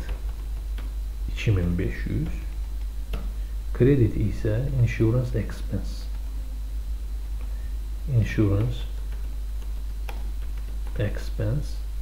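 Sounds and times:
steady low hum: 0.0s - 12.0s
keyboard clicks: 8.6s - 11.0s.

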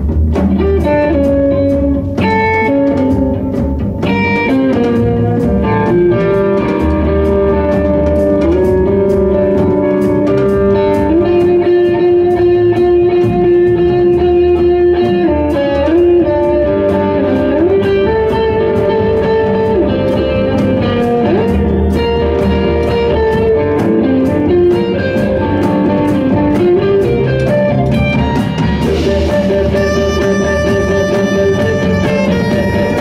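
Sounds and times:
guitar: 0.0s - 33.0s
steady drum pulse: 0.0s - 33.0s
tenor saxophone melody: 29.1s - 33.0s.

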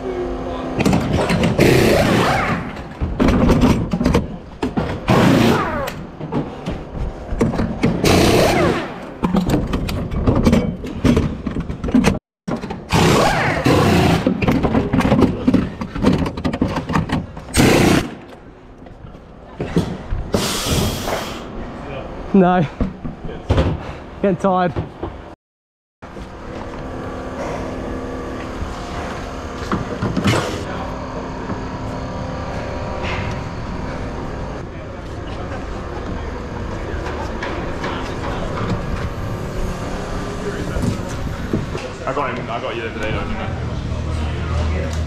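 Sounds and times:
pneumatic wheel gun bursts: 8.0s - 9.0s, 17.5s - 18.2s, 20.3s - 21.4s.

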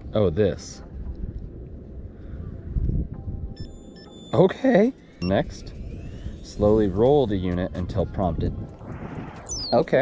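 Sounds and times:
wind buffeting microphone: 0.0s - 3.6s, 5.5s - 10.0s.

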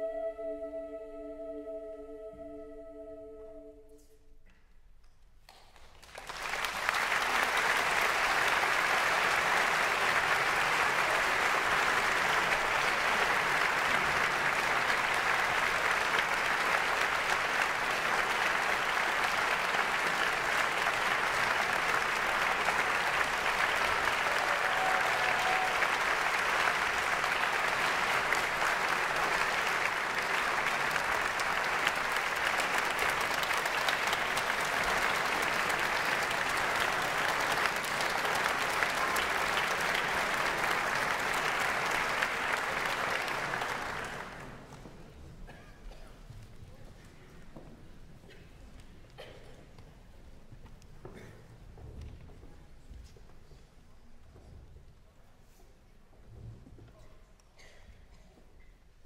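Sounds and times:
audience applauding: 5.5s - 45.6s.

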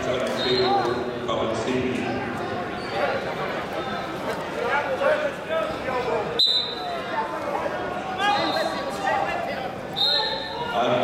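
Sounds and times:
indistinct shouting and voices: 0.0s - 11.0s.

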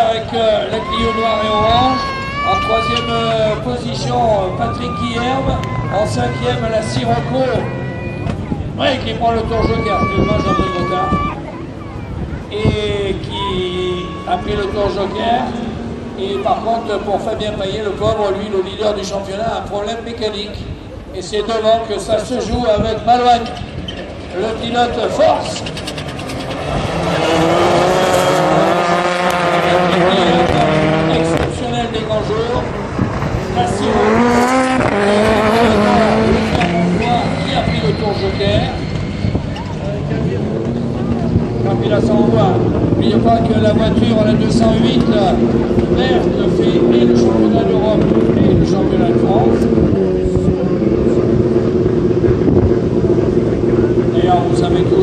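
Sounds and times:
racing car engines: 0.0s - 55.0s.

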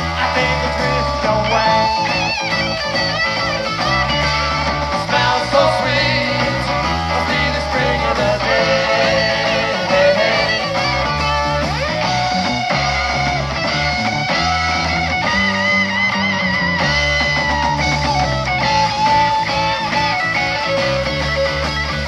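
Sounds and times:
rock band with bending guitar: 0.0s - 22.0s.

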